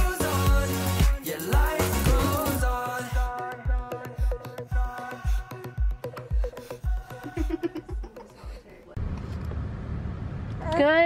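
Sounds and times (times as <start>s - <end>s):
background music with a beat: 0.0s - 8.7s
car road noise rumble: 9.0s - 11.0s.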